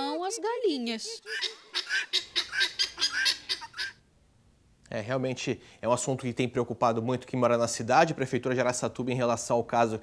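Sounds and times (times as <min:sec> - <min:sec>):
chickens and guinea fowl calling: 0:01.1 - 0:04.0.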